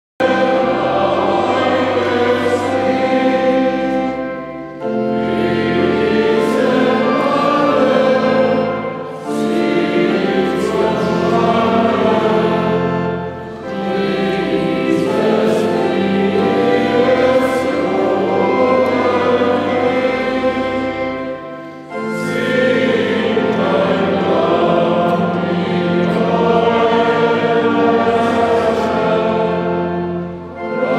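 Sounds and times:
choir singing sustained chords: 0:00.2 - 0:30.9.

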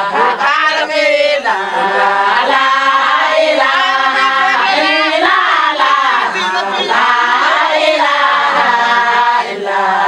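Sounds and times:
women singing and chanting: 0:00.0 - 0:10.0.

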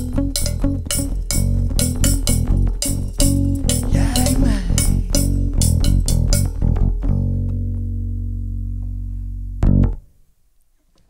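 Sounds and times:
band chord on guitars and bass: 0:00.0 - 0:10.0.

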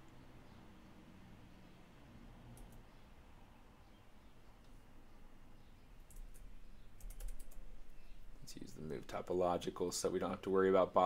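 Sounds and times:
computer keyboard keys clicking: 0:07.0 - 0:07.6.

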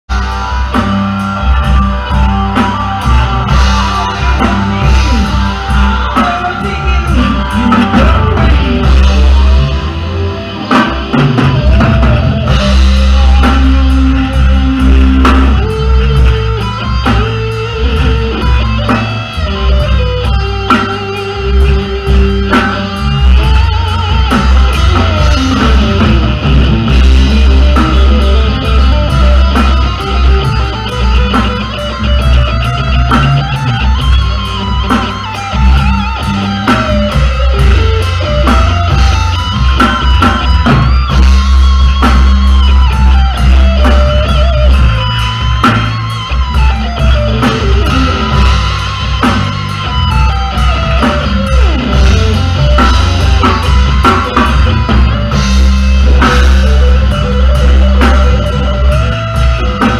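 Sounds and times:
bass guitar: 0:00.0 - 0:59.9
drum kit: 0:00.1 - 0:59.9
electric guitar solo: 0:00.1 - 0:59.9.

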